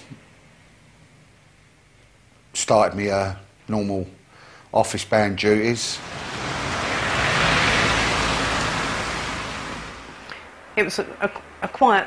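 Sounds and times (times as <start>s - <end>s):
rushing noise: 5.6s - 10.6s.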